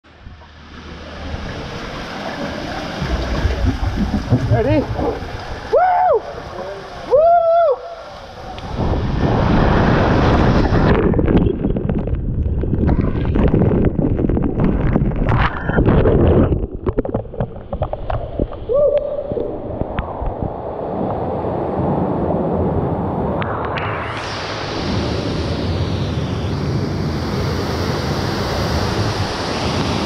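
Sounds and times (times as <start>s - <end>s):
water splashing in pool: 0.1s - 7.1s
water rushing in slide tube: 0.1s - 21.1s, 23.7s - 30.0s
waterfall hissing: 24.0s - 30.0s.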